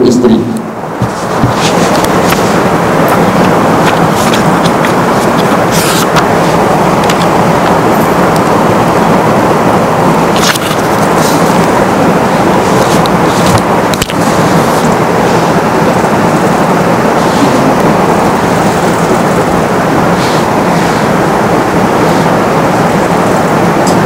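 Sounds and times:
loud rushing hiss: 0:00.2 - 0:24.0.

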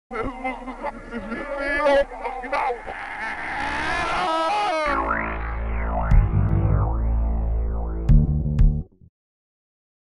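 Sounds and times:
woman screaming: 0:03.8 - 0:04.9.

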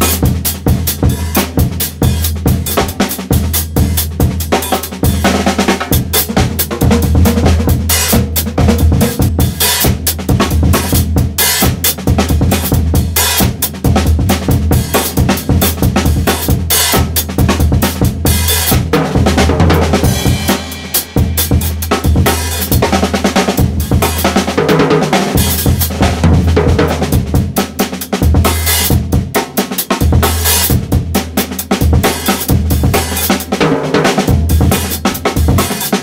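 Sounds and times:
drum kit playing breakbeat: 0:00.0 - 0:36.0.

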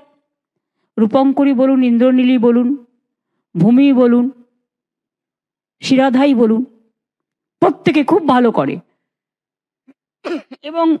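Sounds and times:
woman speaking into a microphone: 0:10.4 - 0:11.0.

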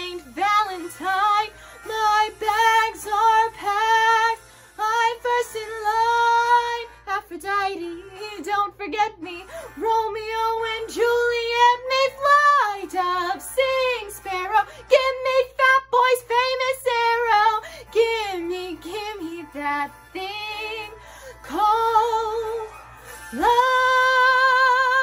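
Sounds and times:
woman singing: 0:00.0 - 0:25.0.

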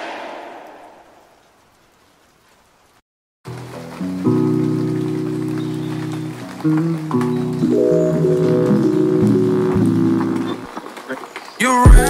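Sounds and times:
faint rain-like crackle: 0:00.6 - 0:11.9
sustained lofi chords: 0:03.5 - 0:10.7.

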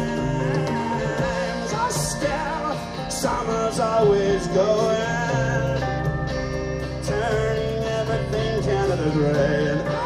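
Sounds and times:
live rock band playing: 0:00.0 - 0:10.0
person singing: 0:00.0 - 0:10.0.

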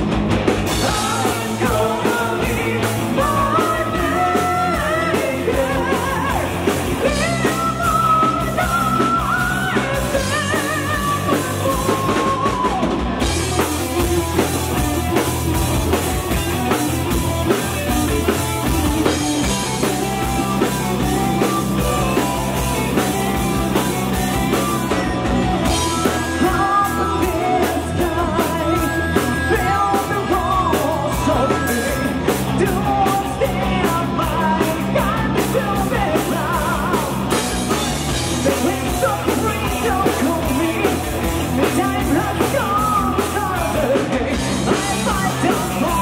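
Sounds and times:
bass guitar: 0:00.0 - 0:46.0
distorted electric guitars: 0:00.0 - 0:46.0
drum kit: 0:00.0 - 0:46.0
keyboard: 0:00.0 - 0:46.0.

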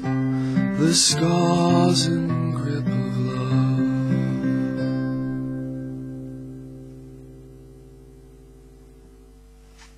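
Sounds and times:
acoustic guitar chord ringing: 0:00.0 - 0:09.8
low electrical hum: 0:00.0 - 0:09.9.

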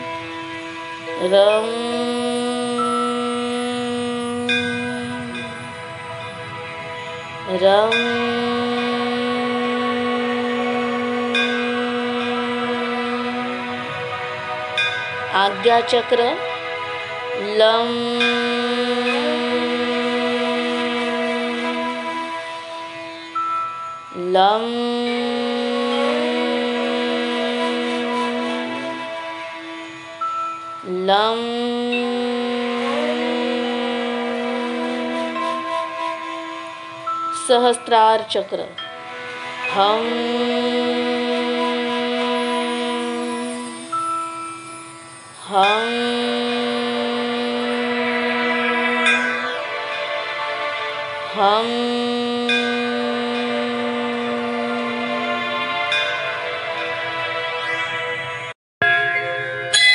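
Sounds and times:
soft background music: 0:00.0 - 0:59.9
steady tones: 0:00.0 - 0:59.9
woman chanting a long hum: 0:01.0 - 0:06.0, 0:07.2 - 0:16.6, 0:17.4 - 0:23.2, 0:24.1 - 0:30.0, 0:30.8 - 0:36.7, 0:37.3 - 0:38.8, 0:39.7 - 0:44.0, 0:45.4 - 0:55.8.

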